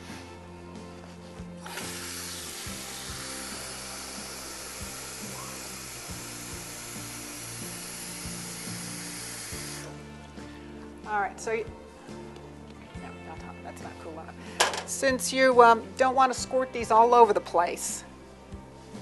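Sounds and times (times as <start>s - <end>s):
background music: 0.0s - 19.0s
tap water running into bowl: 1.6s - 9.8s.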